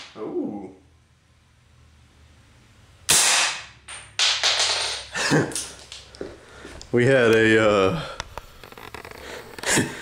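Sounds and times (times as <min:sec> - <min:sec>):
rifle shot: 0:03.1 - 0:03.8.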